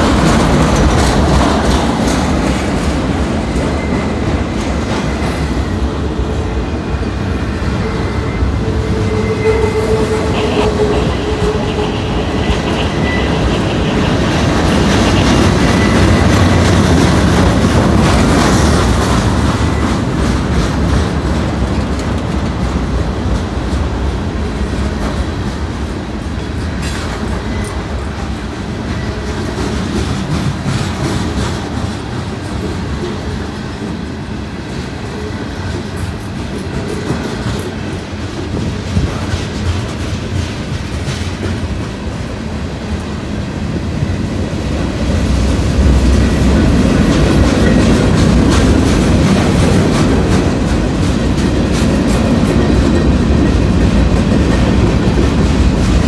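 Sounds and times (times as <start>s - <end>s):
freight train wheels rumbling: 0.0s - 56.0s.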